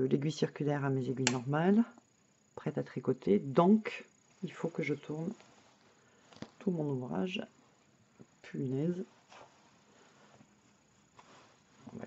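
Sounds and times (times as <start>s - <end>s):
faint rustle of cardigan: 4.2s - 12.0s.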